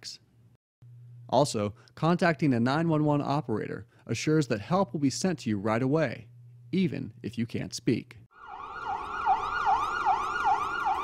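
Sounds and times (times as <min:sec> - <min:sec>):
siren yelping: 0:08.3 - 0:11.0.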